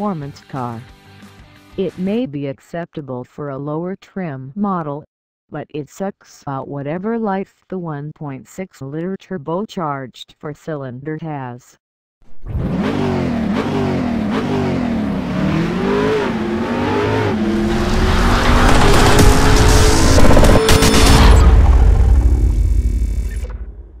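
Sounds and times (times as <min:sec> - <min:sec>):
car engine revving: 0:12.3 - 0:23.4.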